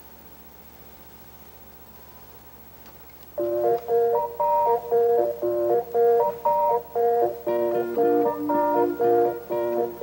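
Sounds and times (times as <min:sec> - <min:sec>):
picked guitar melody: 0:03.4 - 0:10.0.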